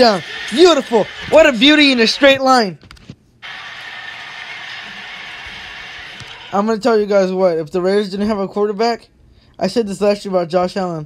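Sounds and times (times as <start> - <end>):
football highlight video soundtrack: 0.0 - 2.5, 3.4 - 7.0.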